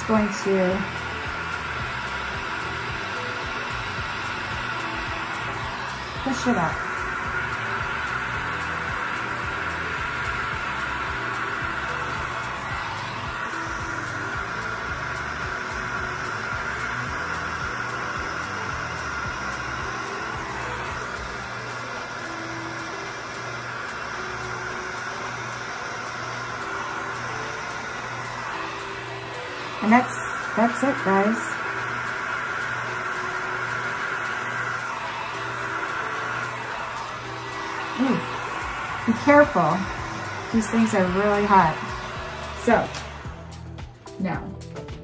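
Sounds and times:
heat gun blowing hot air: 0.0s - 43.9s
soft background music: 0.0s - 45.0s.

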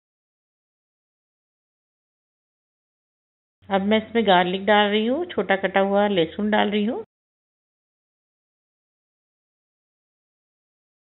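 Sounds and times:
person speaking: 3.7s - 7.1s.

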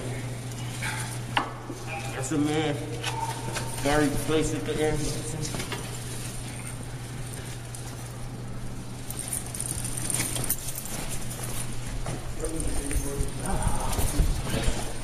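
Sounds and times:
muffled voices: 0.0s - 7.1s, 12.3s - 15.0s
footsteps: 0.5s - 15.0s
chair wheeled along hard floor: 3.0s - 15.0s.

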